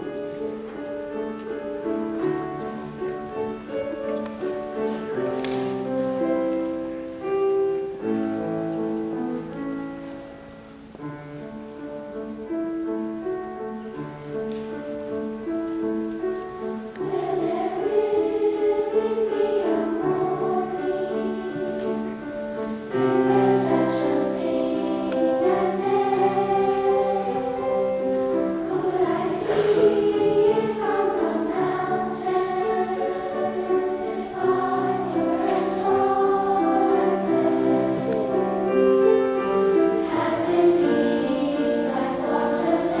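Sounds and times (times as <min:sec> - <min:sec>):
children's choir singing: 0:00.0 - 0:43.0
grand piano: 0:00.0 - 0:43.0.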